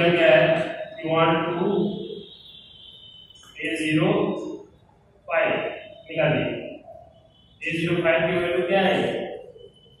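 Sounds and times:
man chanting long tones: 0.0 - 2.2, 5.3 - 6.8, 7.6 - 9.6.

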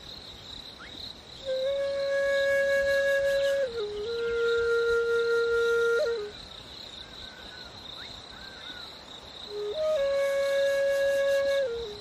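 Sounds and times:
flute-like wind instrument: 1.4 - 6.5, 9.5 - 12.0.

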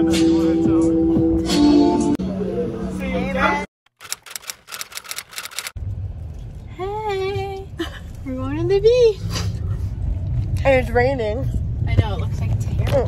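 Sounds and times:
rapid sharp clicks: 3.9 - 5.8
low car cabin rumble: 5.8 - 13.0
people talking: 6.7 - 9.2, 10.6 - 13.0.

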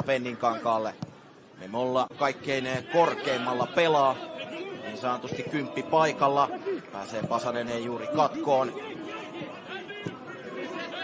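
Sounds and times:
low chatter: 2.2 - 11.0
people shouting calls: 2.6 - 7.0, 7.9 - 11.0.

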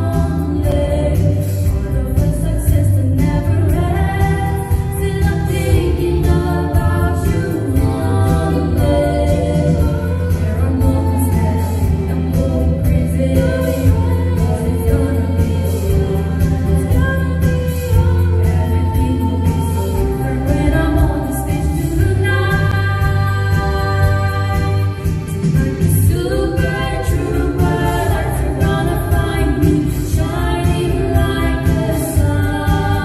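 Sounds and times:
low bass line: 0.0 - 33.0
vocal quartet singing in harmony: 0.0 - 33.0.

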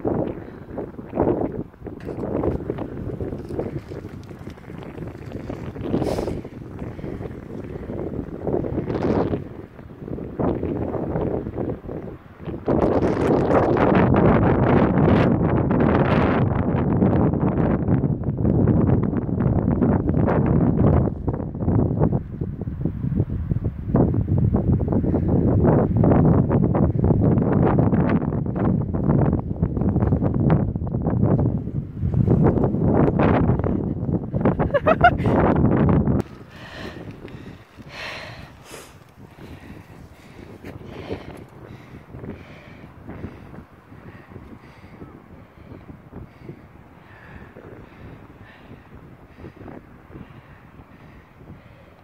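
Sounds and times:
wind buffeting microphone: 0.0 - 52.0.

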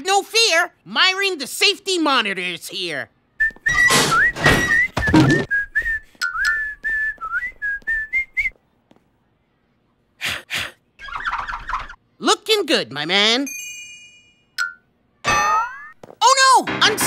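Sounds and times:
person whistling a tune: 3.4 - 8.5.

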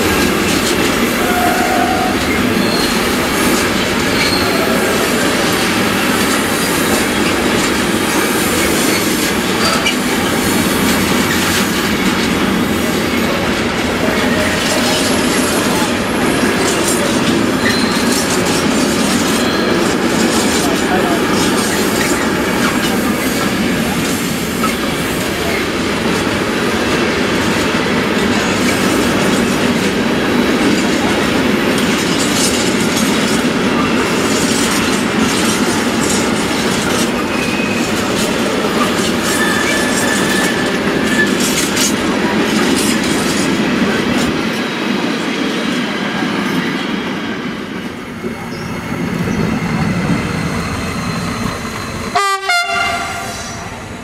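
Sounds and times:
train wheels rumbling on rails: 0.0 - 54.0
wheel squeals: 0.5 - 12.2, 14.1 - 23.5, 32.0 - 43.5
train horn: 1.1 - 2.9, 52.1 - 53.6.

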